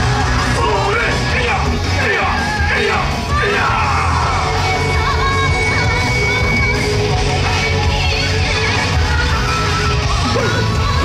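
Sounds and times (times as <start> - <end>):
loud dance music: 0.0 - 11.0.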